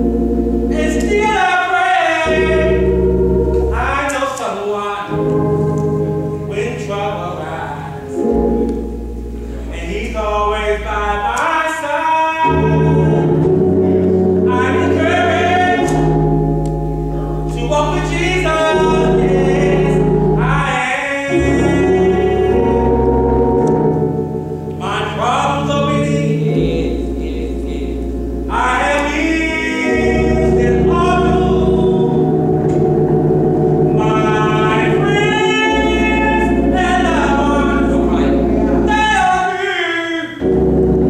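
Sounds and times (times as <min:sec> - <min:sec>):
gospel choir singing: 0:00.0 - 0:08.7, 0:09.4 - 0:41.0
keyboard holding low chord: 0:00.0 - 0:41.0
choir singing: 0:12.4 - 0:16.3, 0:28.5 - 0:39.4.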